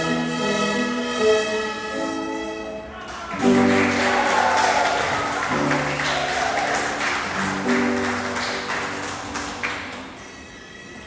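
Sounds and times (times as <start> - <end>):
audience clapping: 3.0 - 10.3.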